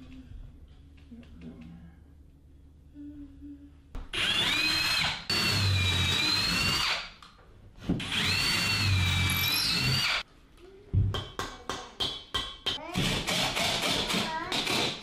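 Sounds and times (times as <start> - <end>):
cordless drill boring into wall: 4.2 - 7.2, 8.0 - 10.2, 13.0 - 15.0.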